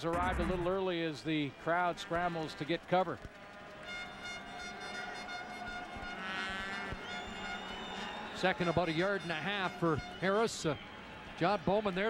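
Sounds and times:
stadium crowd noise: 0.0 - 12.0
sustained horn tones: 3.8 - 10.5.

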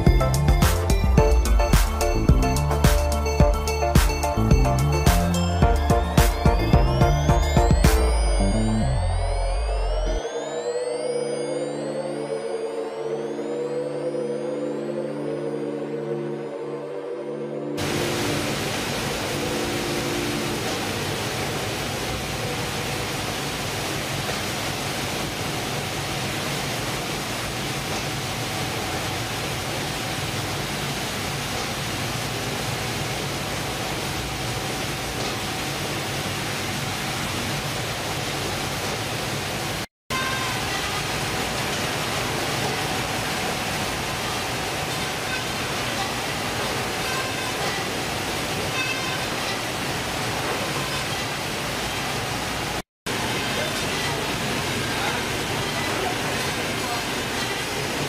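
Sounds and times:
processing machinery and conveyors: 17.8 - 39.8, 40.4 - 58.0
running water: 17.8 - 58.0.

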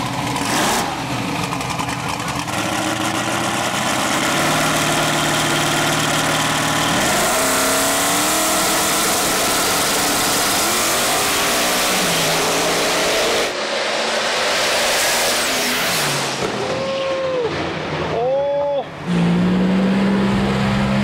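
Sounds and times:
drag race engines revving: 0.0 - 18.2, 18.9 - 21.0.

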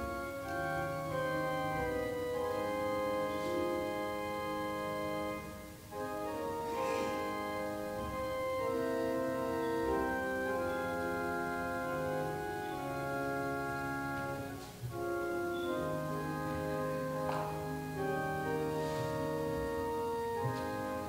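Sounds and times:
church organ chords: 0.0 - 21.0.

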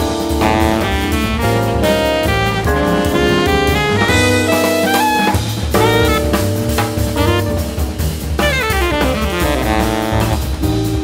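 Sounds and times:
jazz group playing: 0.0 - 11.0.

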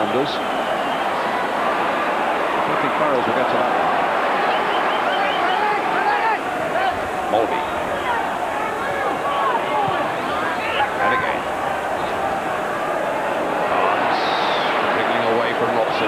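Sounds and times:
stadium crowd din: 0.0 - 16.0.

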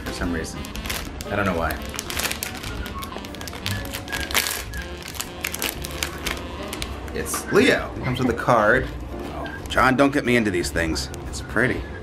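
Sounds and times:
foil packet crinkling: 0.0 - 7.0
foil packet ripping: 0.0 - 7.0
soft background music: 0.0 - 12.0.

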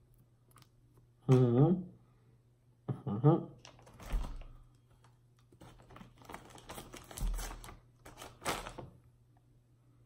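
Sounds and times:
plastic bag crinkling: 3.6 - 9.0.

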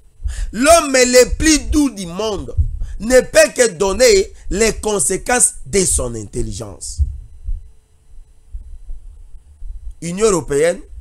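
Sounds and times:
low rumble with soft thumps: 0.0 - 0.6, 1.2 - 11.0
faint steady hum: 0.0 - 11.0.

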